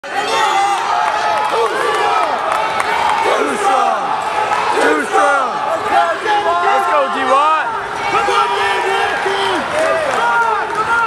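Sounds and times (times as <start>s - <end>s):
crowd yelling encouragement: 0.0s - 11.0s.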